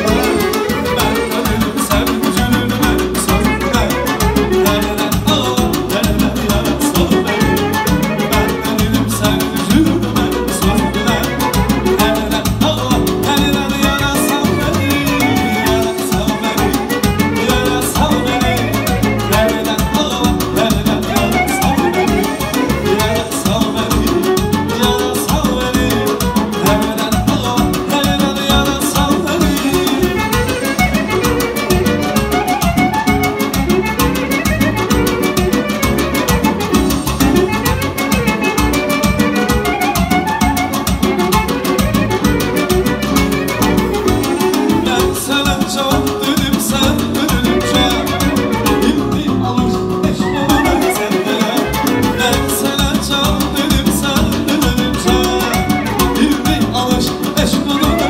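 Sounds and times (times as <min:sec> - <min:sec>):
clarinet: 0:00.0 - 0:58.0
keyboard beat: 0:00.0 - 0:58.0
man singing into a microphone: 0:00.0 - 0:58.0
violin: 0:00.0 - 0:58.0.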